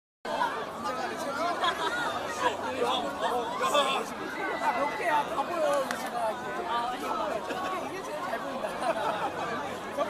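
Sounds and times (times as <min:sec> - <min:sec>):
voices talking over one another: 0:00.3 - 0:10.0.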